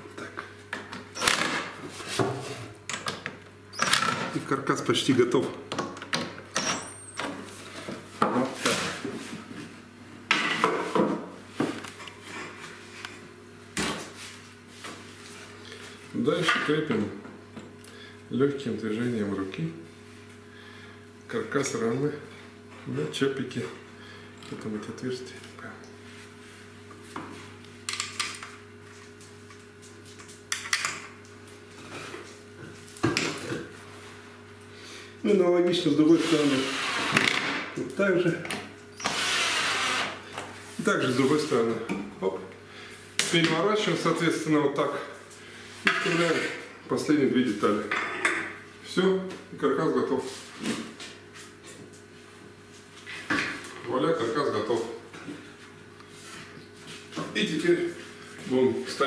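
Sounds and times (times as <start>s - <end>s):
faint steady hum: 0.0s - 36.1s.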